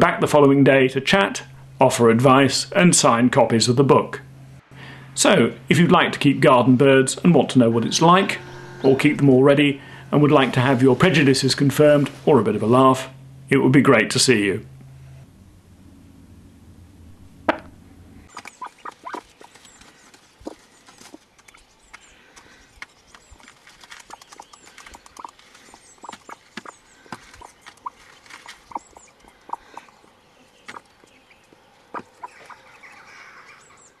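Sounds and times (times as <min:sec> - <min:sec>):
hens clucking: 0:18.4 - 0:19.6, 0:24.1 - 0:30.1, 0:31.9 - 0:32.8.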